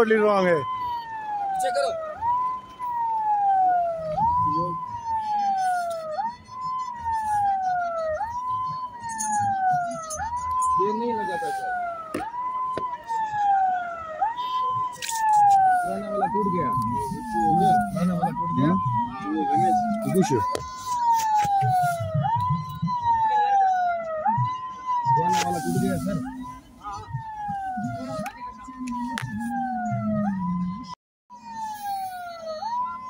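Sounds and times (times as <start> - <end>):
electronic siren wailing: 0.0 - 33.0.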